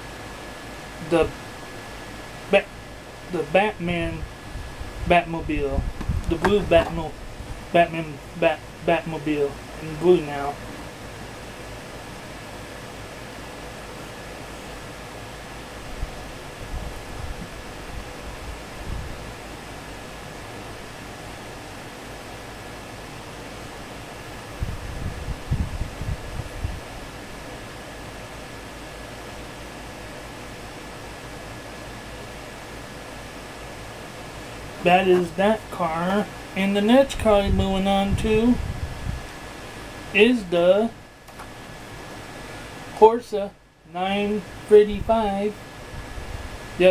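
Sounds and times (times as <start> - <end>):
faint high whine: 0.0 - 38.7, 39.6 - 46.0
fan-like room hiss: 0.0 - 46.9
dull low bumps: 5.8 - 7.6.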